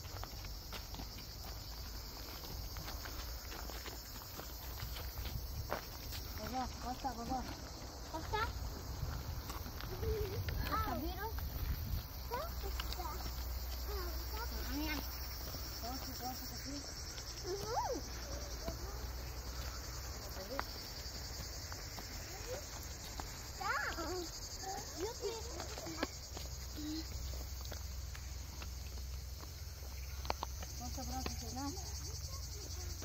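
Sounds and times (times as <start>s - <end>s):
cicadas buzzing: 0.0s - 33.0s
footsteps on stone path: 0.0s - 33.0s.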